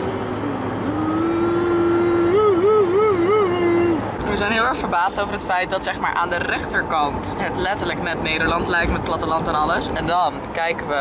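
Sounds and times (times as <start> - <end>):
car cabin road and engine noise: 0.0 - 11.0.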